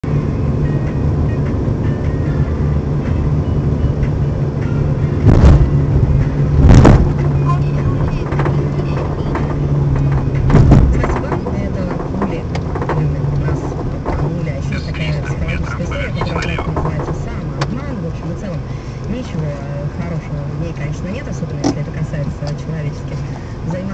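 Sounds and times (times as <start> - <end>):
car engine and tyre drone: 0.0 - 23.9
suspension knocking and banging: 5.2 - 14.8, 16.2 - 18.0.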